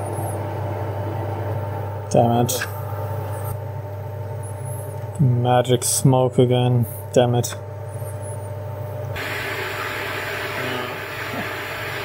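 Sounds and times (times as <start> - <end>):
lab equipment humming: 0.0 - 12.0.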